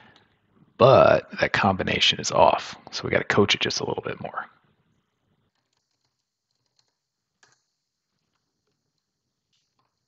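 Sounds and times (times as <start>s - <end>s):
faint keyboard typing: 5.5s - 10.0s.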